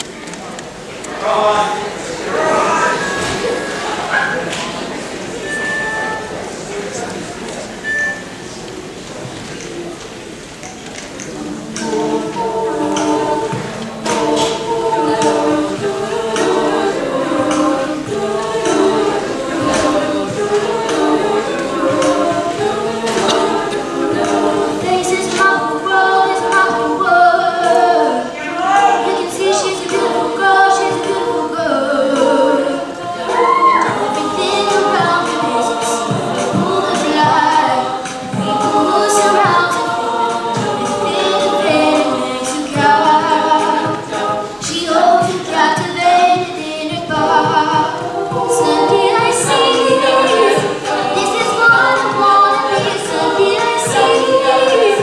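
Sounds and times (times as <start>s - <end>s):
women singing a cappella: 0.8s - 9.0s, 10.4s - 55.0s
vocal percussion beat: 1.0s - 55.0s.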